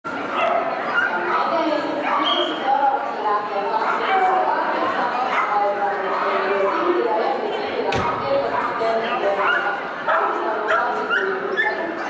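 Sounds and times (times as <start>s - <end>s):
people chattering: 0.1s - 12.0s.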